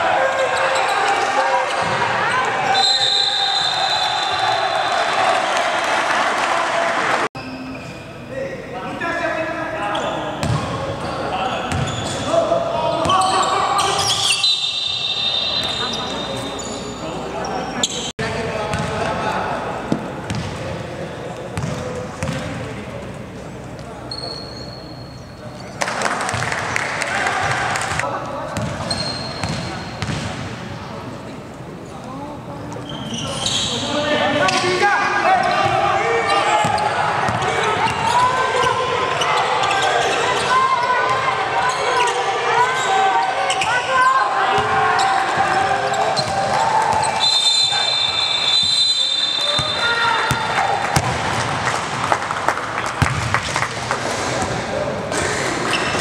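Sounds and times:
players shouting: 0.0 - 7.3, 33.5 - 51.7.

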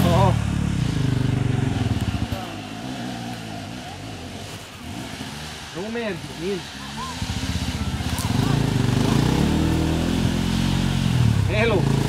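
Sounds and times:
motorcycle engines revving: 0.0 - 12.0.

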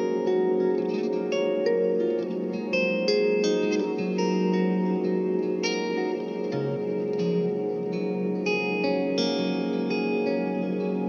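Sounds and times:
plucked guitar with echo: 0.0 - 11.0.

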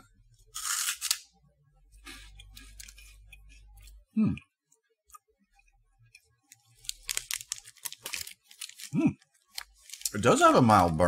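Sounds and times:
loud crunch of snack bite: 0.6 - 1.2.

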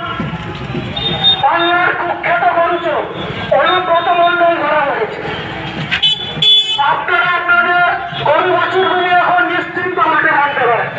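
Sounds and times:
man shouting through loudspeaker: 0.0 - 0.3, 1.0 - 5.1, 6.4 - 10.9
vehicle horn toot: 1.0 - 1.6, 6.0 - 6.9.

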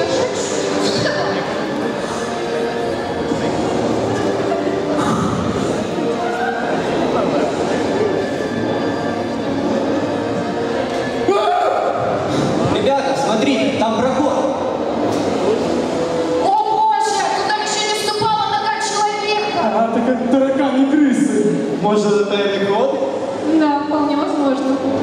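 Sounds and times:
faint music: 0.0 - 25.0.

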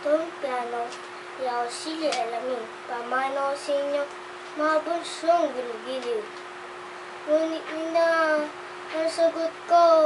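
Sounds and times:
boy reciting in sing-song voice: 0.0 - 6.4, 7.2 - 10.0.

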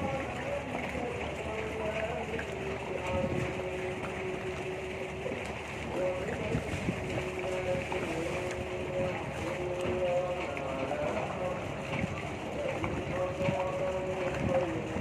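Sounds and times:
boat engine: 0.0 - 15.0.

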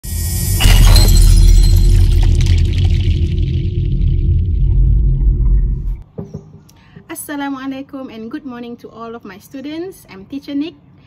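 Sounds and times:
glass shattering: 0.1 - 3.8
deep bass rumble: 0.2 - 6.0.

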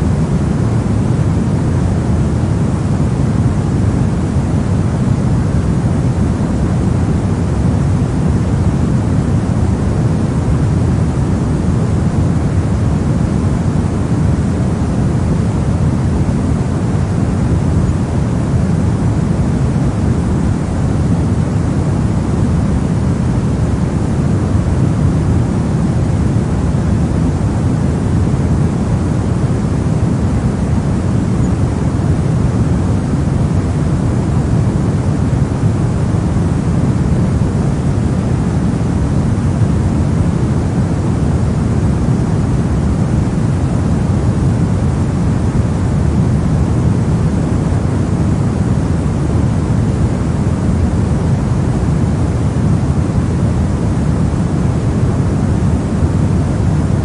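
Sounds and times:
pink noise rushing hiss: 0.0 - 57.0.

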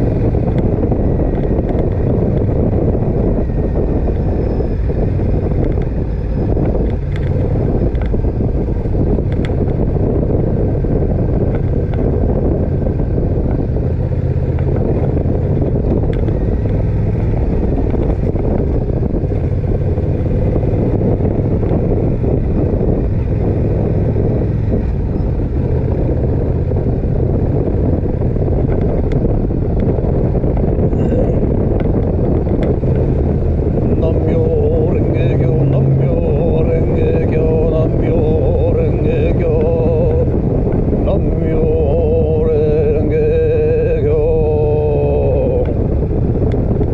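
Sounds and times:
motorcycle engine cruising: 0.0 - 46.9
road noise: 0.0 - 46.9.

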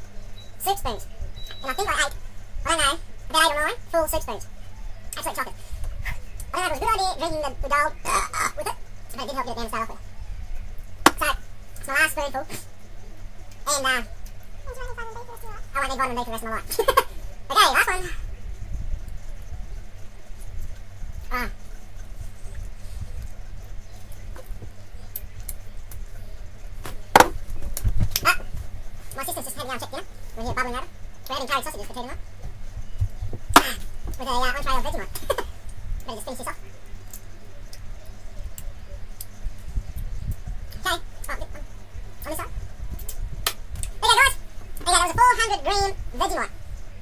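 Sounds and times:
steady low rumble: 2.1 - 47.0.

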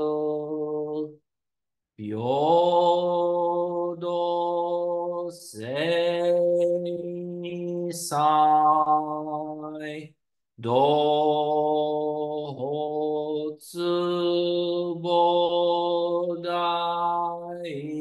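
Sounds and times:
man chanting: 2.0 - 18.0.

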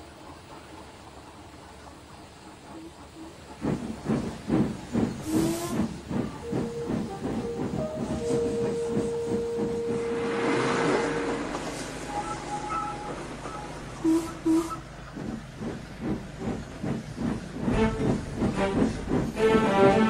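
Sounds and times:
steam locomotive chuffing: 0.0 - 20.0
hiss of escaping steam: 3.7 - 8.2
steam whistle: 8.1 - 14.8.

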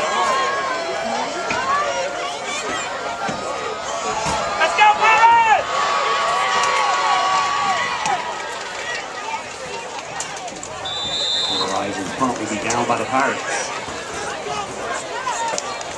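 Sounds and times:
crowd shouting and cheering: 0.0 - 15.9.

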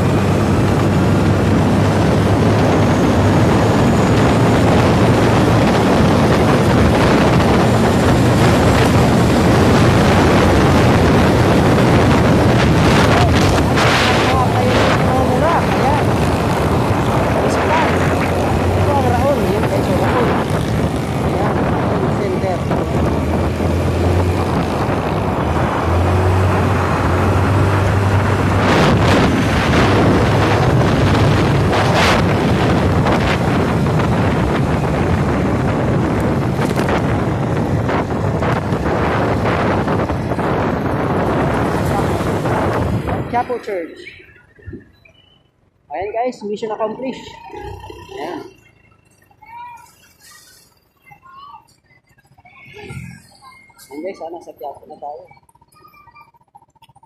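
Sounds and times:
wind on microphone: 0.0 - 45.0
city traffic: 0.0 - 57.0.

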